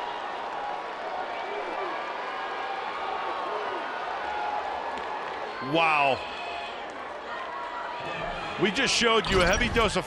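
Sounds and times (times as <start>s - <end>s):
crowd voices: 2.9s - 10.0s.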